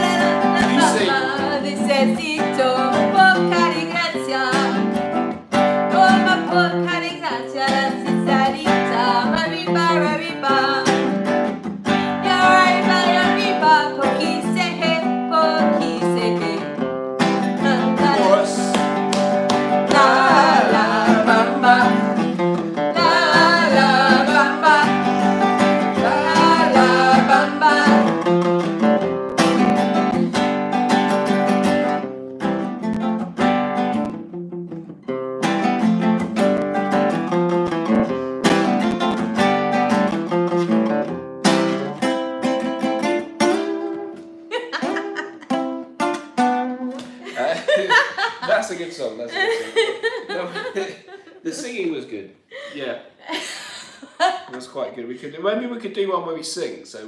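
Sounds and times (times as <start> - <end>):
person singing: 0.0 - 4.8, 5.9 - 11.0, 12.1 - 16.6, 17.6 - 19.0, 19.8 - 28.3, 44.5 - 45.5
acoustic guitar picked and strummed: 0.0 - 51.4.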